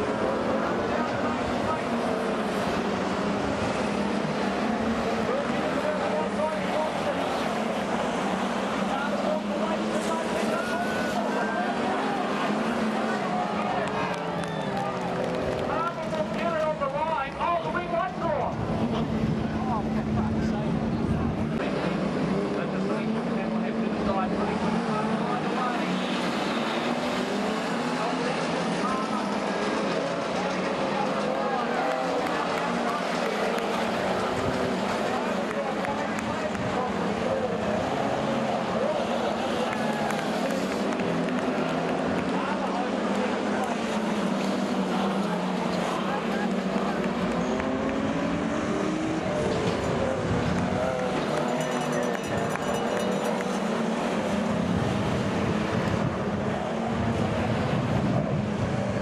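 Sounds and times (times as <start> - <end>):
race car engines revving: 0.0 - 59.0
voices: 0.0 - 59.0.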